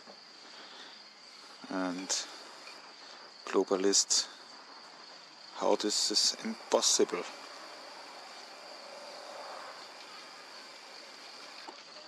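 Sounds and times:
high insect drone: 0:00.0 - 0:12.0
soft hiss: 0:00.0 - 0:12.0.

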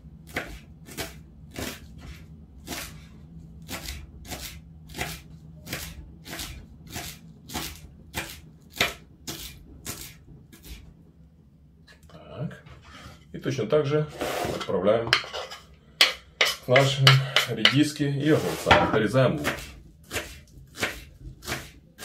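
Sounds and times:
knife chopping on wooden board: 0:00.3 - 0:03.0, 0:03.7 - 0:10.8, 0:16.0 - 0:17.8, 0:18.4 - 0:22.0.

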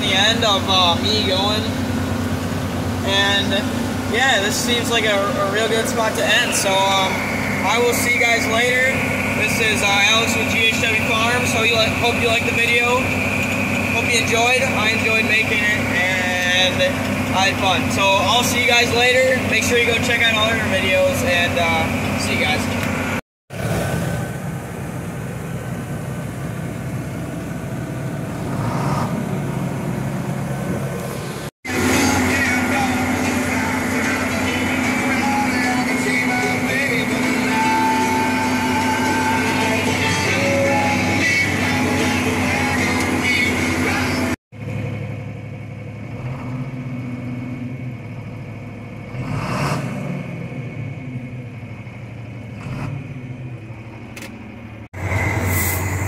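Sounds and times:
diesel tractor engine running: 0:00.0 - 0:56.0.

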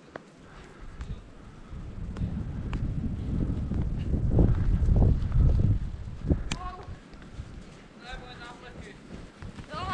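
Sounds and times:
wind buffeting microphone: 0:00.4 - 0:09.9.

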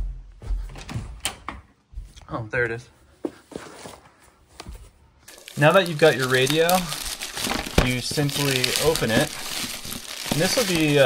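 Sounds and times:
door thumping: 0:00.0 - 0:01.7.

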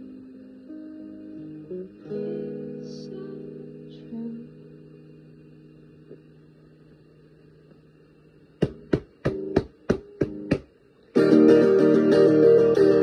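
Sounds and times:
acoustic guitar strumming: 0:00.0 - 0:06.1, 0:08.6 - 0:13.0
acoustic guitar held chord: 0:08.6 - 0:13.0.

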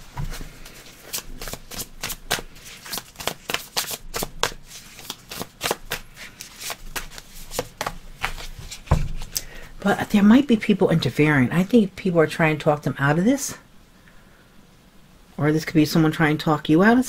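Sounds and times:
cards being shuffled: 0:00.2 - 0:09.5.

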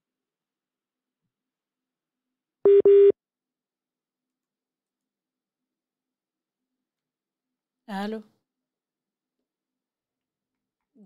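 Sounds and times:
telephone line beeps: 0:02.7 - 0:03.1.

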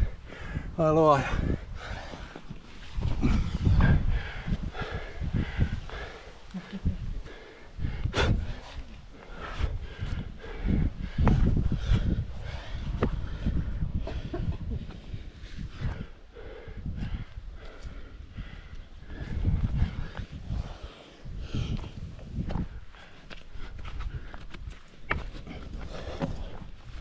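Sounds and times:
person breathing hard: 0:00.0 - 0:24.6.

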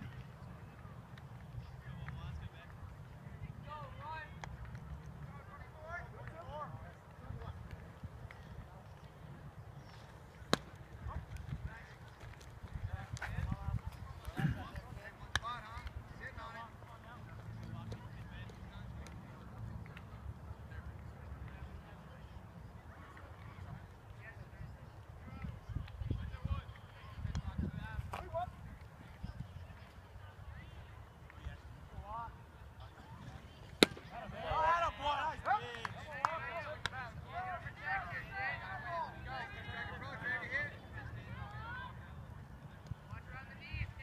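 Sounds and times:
baseball smacking into mitt: 0:33.8 - 0:34.2
players shouting: 0:33.8 - 0:40.6.

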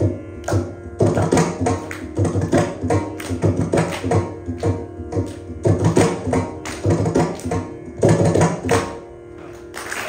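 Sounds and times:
veena playing: 0:00.0 - 0:10.0.

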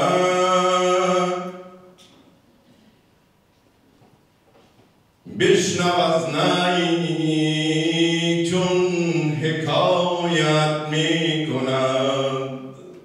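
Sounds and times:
man chanting poetry: 0:00.0 - 0:01.8, 0:05.3 - 0:12.8.

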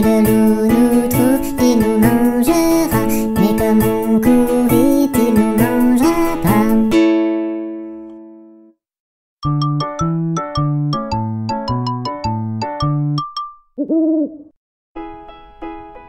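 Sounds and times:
owl-like hoot: 0:13.8 - 0:14.5.

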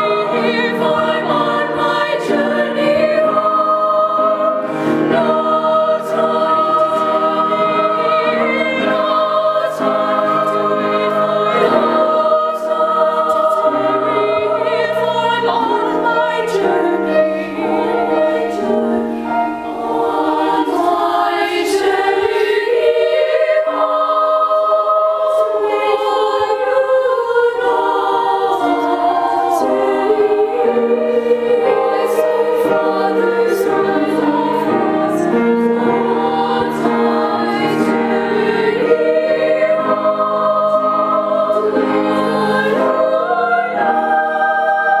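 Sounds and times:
choir singing: 0:00.0 - 0:45.0.

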